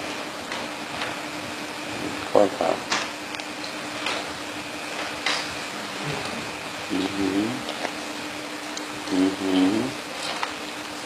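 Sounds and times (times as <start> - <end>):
person speaking: 6.8 - 7.8, 9.0 - 10.0.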